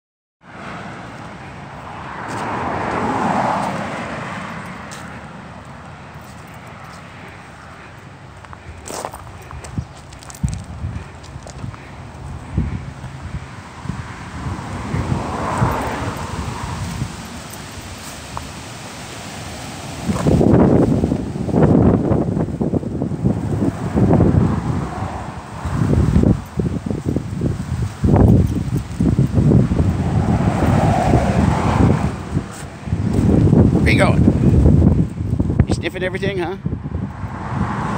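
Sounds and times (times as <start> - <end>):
cars passing: 0.4 - 37.9
wind buffeting microphone: 7.0 - 18.7, 19.4 - 37.9.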